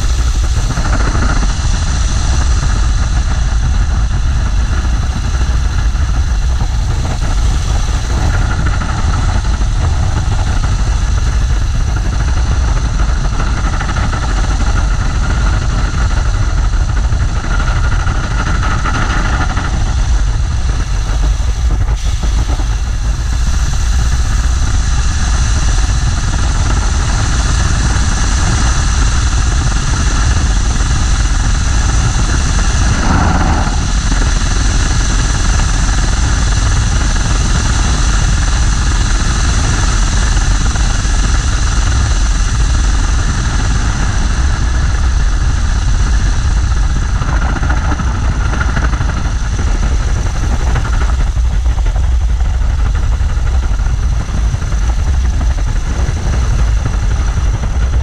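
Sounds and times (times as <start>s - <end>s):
rotary aircraft engine running: 0.0s - 58.0s.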